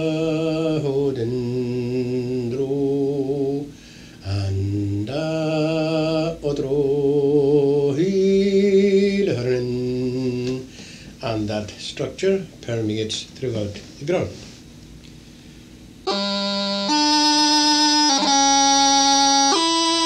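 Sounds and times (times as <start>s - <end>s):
man singing vocable syllables: 0.0s - 13.7s.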